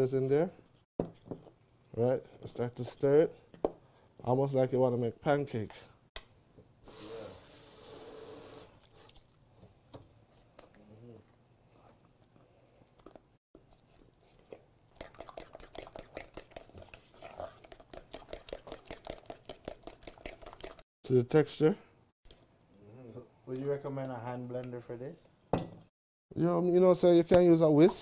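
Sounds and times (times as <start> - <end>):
brief hiss: 6.8 - 9.1
utensil scraping metal bowl: 13.7 - 20.8.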